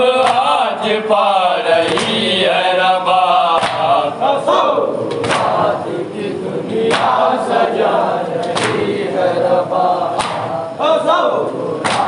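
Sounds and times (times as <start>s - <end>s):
men chanting together: 0.0s - 12.0s
chest slap: 10.2s - 10.5s.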